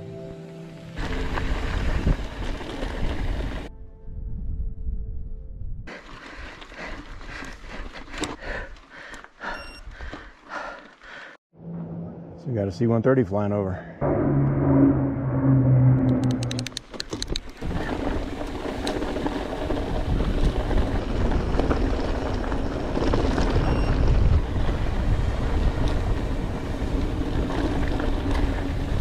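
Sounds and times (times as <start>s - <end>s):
bike tyres rumbling on dirt: 1.0s - 3.7s, 5.9s - 11.3s, 16.5s - 29.0s
turboprop aircraft drone: 14.0s - 16.9s
wind rushing over microphone: 14.0s - 29.0s.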